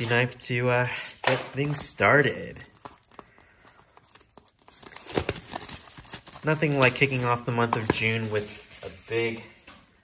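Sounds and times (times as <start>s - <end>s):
plastic wrapping crinkling and tearing: 1.6s - 9.4s.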